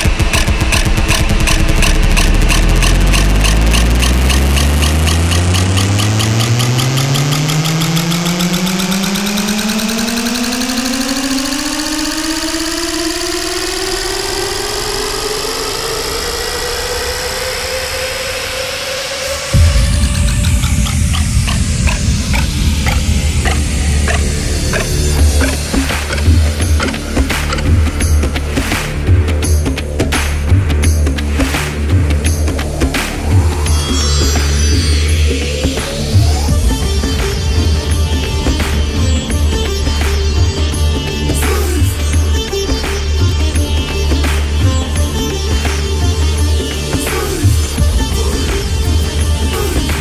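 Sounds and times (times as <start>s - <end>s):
beat with heavy bass: 0.0s - 12.7s, 19.5s - 50.0s
fast repeated pulses: 0.0s - 15.4s, 19.4s - 29.1s
rising synth note: 0.0s - 28.4s.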